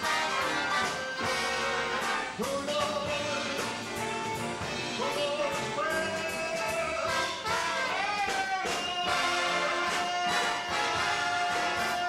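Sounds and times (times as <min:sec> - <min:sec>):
big band swing music: 0:00.0 - 0:12.0
brass section playing: 0:00.0 - 0:12.0
steady drum beat: 0:00.0 - 0:12.0.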